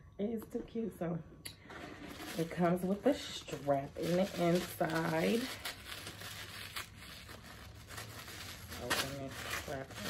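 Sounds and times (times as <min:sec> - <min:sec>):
paper wrapping rustling: 0:01.7 - 0:10.0
paper crinkles: 0:01.8 - 0:10.0.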